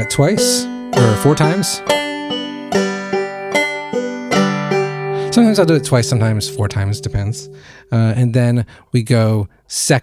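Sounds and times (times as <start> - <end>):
banjo plucked notes: 0.0 - 8.3.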